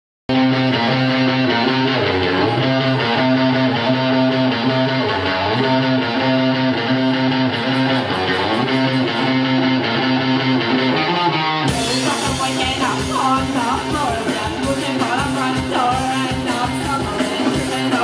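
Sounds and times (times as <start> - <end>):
band with drums and cymbals: 0.3 - 11.0, 11.6 - 18.0
electric guitar chords: 0.3 - 18.0.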